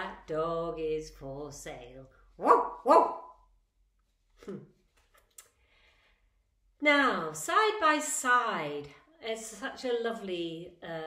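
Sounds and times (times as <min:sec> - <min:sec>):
woman imitating dog bark: 0:02.4 - 0:03.3.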